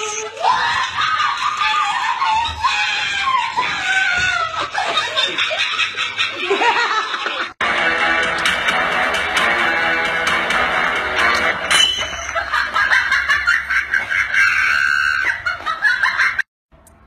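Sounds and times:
laughter: 0:03.5 - 0:07.6, 0:12.1 - 0:16.5.

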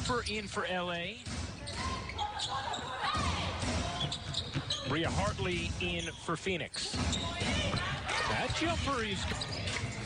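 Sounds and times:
players calling out: 0:01.6 - 0:10.0.

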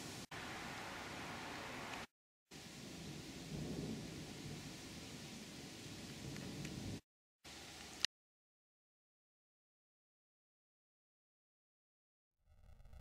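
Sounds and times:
steady hiss: 0:00.0 - 0:08.1
thunder rumbling: 0:02.6 - 0:07.0.

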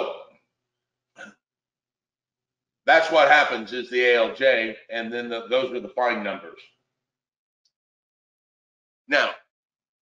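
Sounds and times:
man speaking: 0:00.0 - 0:00.2, 0:02.9 - 0:06.6, 0:09.1 - 0:09.3
short vocal sound: 0:09.1 - 0:09.3.

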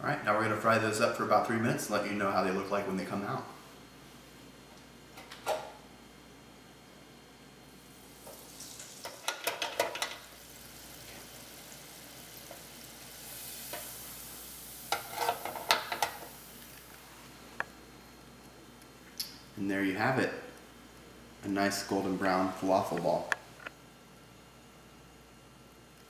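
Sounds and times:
food sizzling in deep fryer oil: 0:07.8 - 0:17.0.

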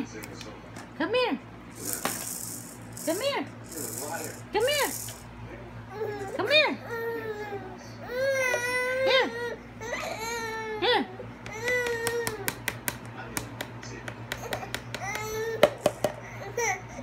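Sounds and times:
baby crying: 0:05.9 - 0:12.6.

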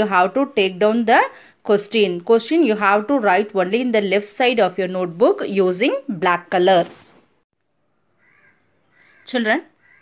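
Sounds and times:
faint distant bird call: 0:07.7 - 0:10.0.

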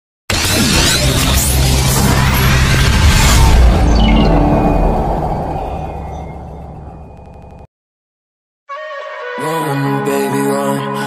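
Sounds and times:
low impact rumble: 0:01.8 - 0:07.6.

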